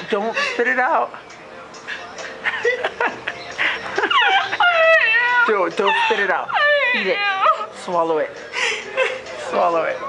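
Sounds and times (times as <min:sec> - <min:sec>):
woman whimpering squeals: 0:04.1 - 0:07.8.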